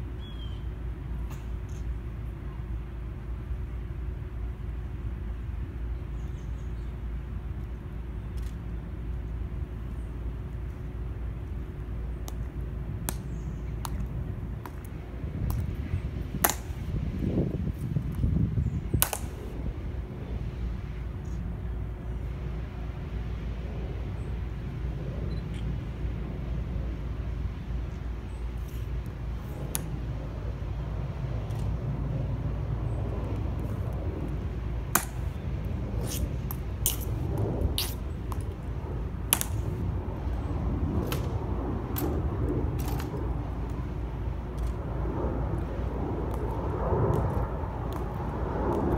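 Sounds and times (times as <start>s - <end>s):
low outdoor rumble: 0.0s - 48.9s.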